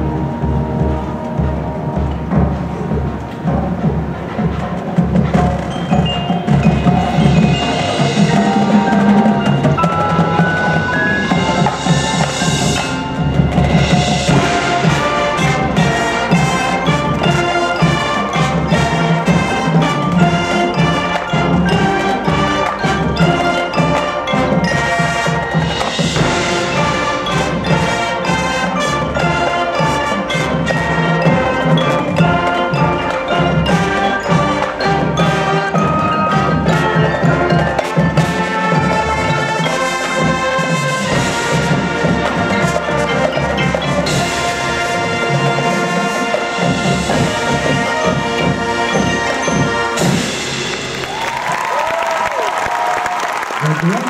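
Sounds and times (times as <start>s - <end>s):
mallet percussion: 0.0s - 54.0s
marching band playing: 0.0s - 54.0s.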